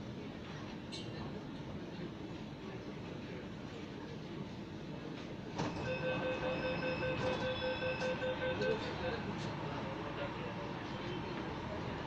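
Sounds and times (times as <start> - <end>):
train running and braking: 5.5 - 10.2.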